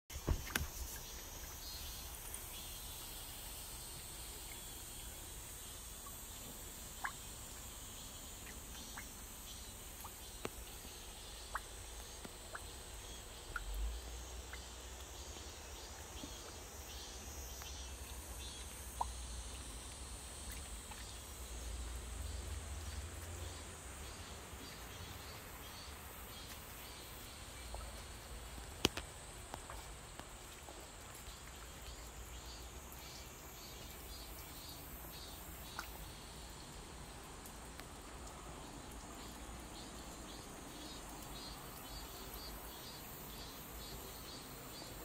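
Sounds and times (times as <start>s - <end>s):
insects chirring: 0.1s - 45.0s
raindrops dripping into water: 0.1s - 45.0s.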